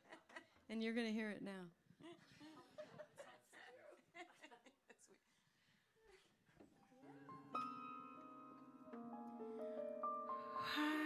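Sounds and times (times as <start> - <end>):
laughter: 0.0 - 0.6, 2.0 - 5.3.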